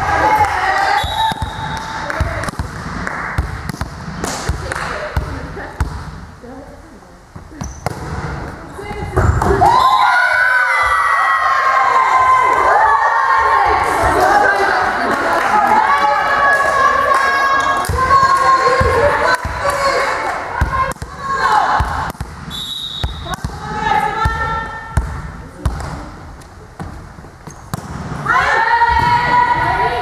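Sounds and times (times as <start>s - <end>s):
players shouting and cheering: 0.0s - 2.5s, 8.8s - 22.2s, 28.2s - 30.0s
ball hitting and bouncing: 1.2s - 6.3s, 7.5s - 9.7s, 20.6s - 28.3s
voices: 8.4s - 22.1s.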